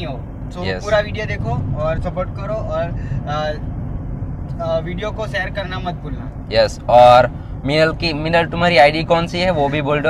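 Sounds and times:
car interior road noise: 0:00.0 - 0:10.0
man's voice: 0:00.6 - 0:03.6.

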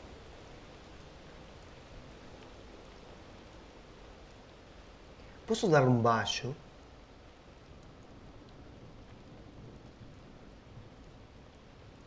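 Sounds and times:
faint steady rain: 0:00.0 - 0:12.0.

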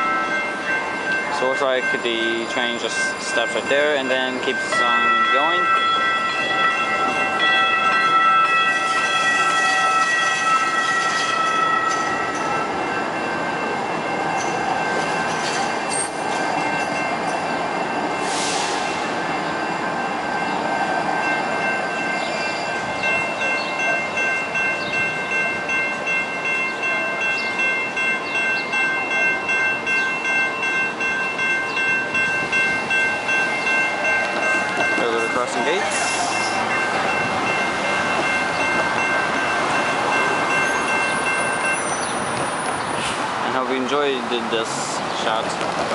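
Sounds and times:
crossing warning bell ringing: 0:00.0 - 0:45.9
train wheels rumbling: 0:00.0 - 0:45.9
train horn: 0:05.0 - 0:12.1.

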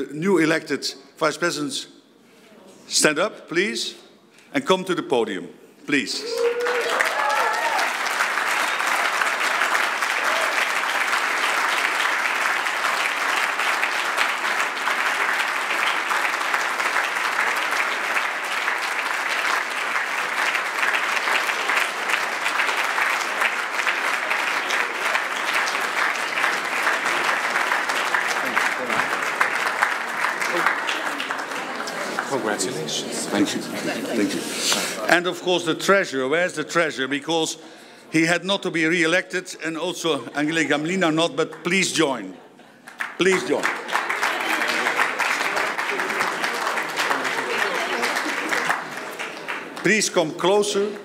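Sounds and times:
audience applauding: 0:06.2 - 0:35.1, 0:42.8 - 0:51.0.

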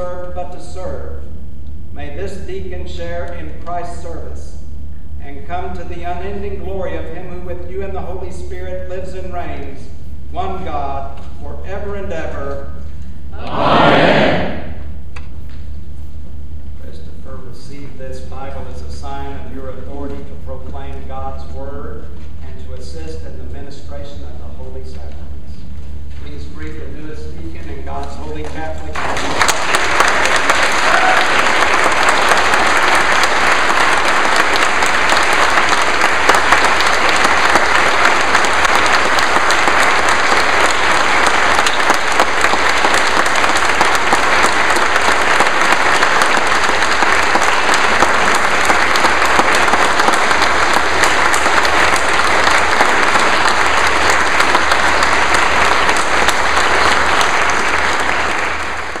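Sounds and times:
crowd applauding: 0:28.5 - 0:59.0.

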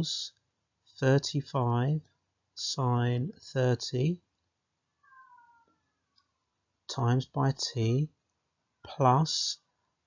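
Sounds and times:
person speaking: 0:00.0 - 0:04.4, 0:06.9 - 0:08.2, 0:08.8 - 0:09.7.

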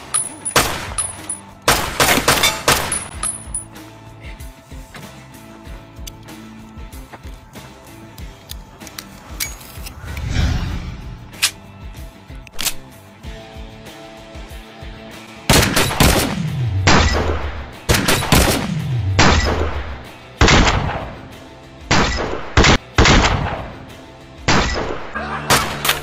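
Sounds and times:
handgun shots with echo: 0:00.0 - 0:03.4, 0:15.5 - 0:21.2, 0:21.9 - 0:23.7, 0:24.5 - 0:26.0
film music score: 0:00.0 - 0:26.0.

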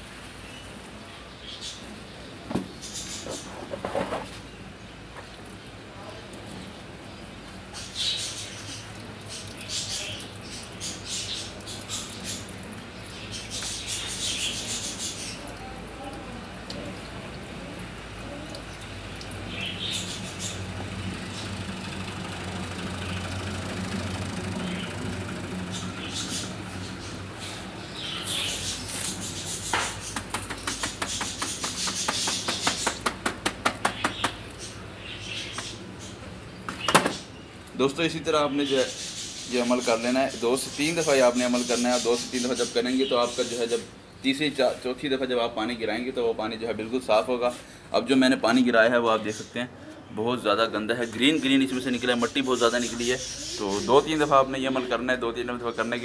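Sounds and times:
sieve tapping against tub: 0:29.8 - 0:34.4.

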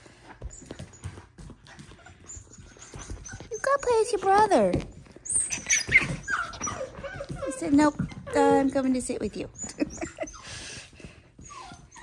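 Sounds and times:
puppy squeaks: 0:00.4 - 0:10.6, 0:11.4 - 0:12.0
puppy whimpering: 0:00.4 - 0:12.0.

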